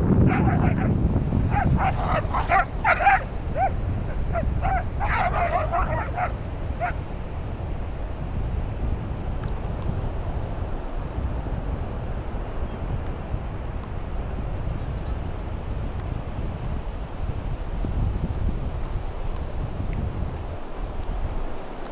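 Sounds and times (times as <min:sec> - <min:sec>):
wind rumbling on microphone: 0:00.0 - 0:21.9
dogs yipping: 0:00.2 - 0:07.0.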